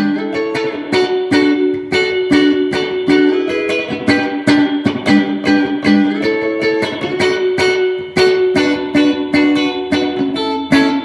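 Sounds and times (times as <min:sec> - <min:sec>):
electric guitar with spring reverb: 0:00.0 - 0:11.0.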